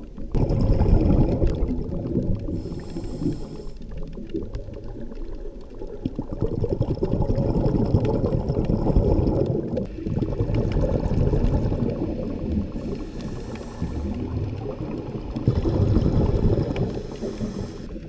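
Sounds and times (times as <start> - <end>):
underwater bubbling: 0.0 - 18.0
underwater rumble of moving water: 0.0 - 18.0.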